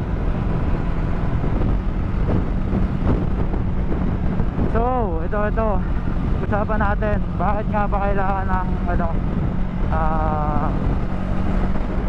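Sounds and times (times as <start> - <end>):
motorcycle engine cruising: 0.0 - 12.0
wind rushing over microphone: 0.0 - 12.0.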